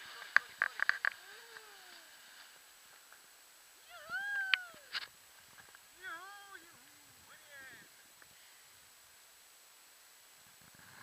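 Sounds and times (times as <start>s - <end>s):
high drawn-out vocal call: 3.8s - 5.1s, 6.0s - 8.0s
brief hiss: 4.0s - 5.8s.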